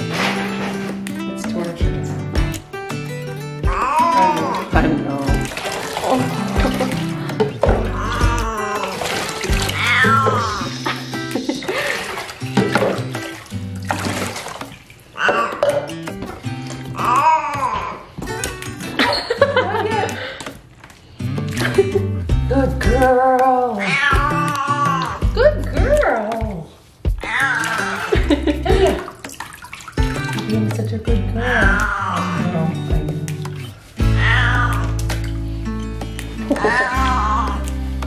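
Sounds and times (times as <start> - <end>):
background music: 0.0 - 38.0
cat meowing: 7.8 - 8.9, 9.6 - 10.7, 15.2 - 15.8, 23.8 - 25.2, 27.2 - 28.1, 31.4 - 32.7, 34.1 - 35.0, 36.6 - 37.7.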